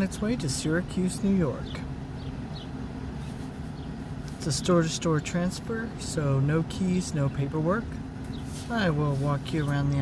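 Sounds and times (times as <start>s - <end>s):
air conditioning running: 0.0s - 10.0s
truck engine idling: 0.0s - 10.0s.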